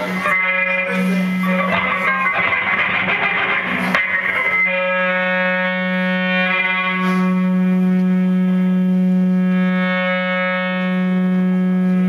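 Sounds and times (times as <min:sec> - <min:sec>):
droning electric guitar and bass: 0:00.0 - 0:12.0.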